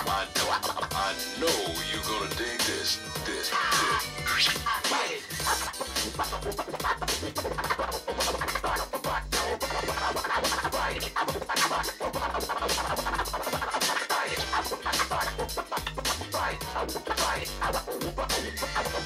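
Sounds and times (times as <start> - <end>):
backing beat with bass line: 0.0 - 19.0
turntable scratching: 0.0 - 19.0.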